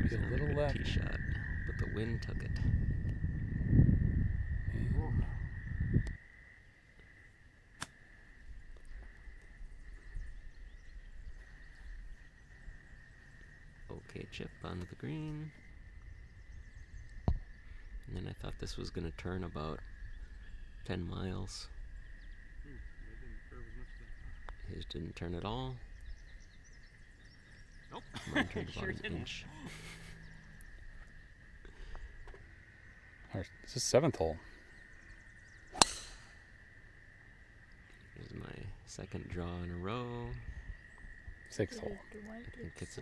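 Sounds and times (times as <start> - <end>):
low rumble: 0.0 - 6.2
wind rumble on microphone: 0.0 - 6.4, 8.4 - 33.2, 40.2 - 42.7
faint bird chirps: 7.9 - 36.6, 37.6 - 43.0.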